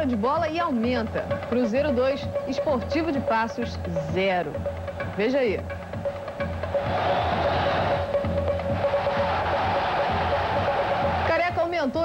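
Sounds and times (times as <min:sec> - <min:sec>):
background music: 0:00.0 - 0:12.0
stadium crowd cheering: 0:06.0 - 0:11.7.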